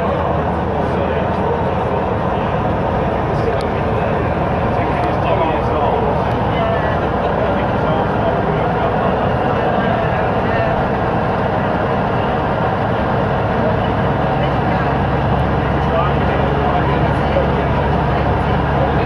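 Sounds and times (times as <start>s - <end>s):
bus engine rumble: 0.0s - 19.0s.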